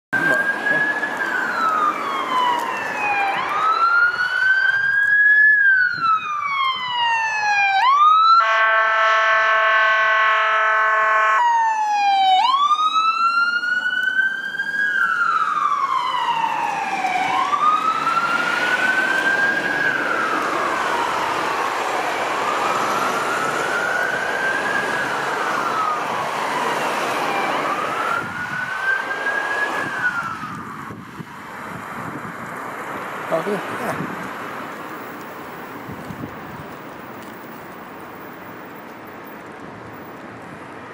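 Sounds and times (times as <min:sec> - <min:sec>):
ambulance siren wailing: 0:00.2 - 0:32.6
many-toned horn blast: 0:08.4 - 0:11.4.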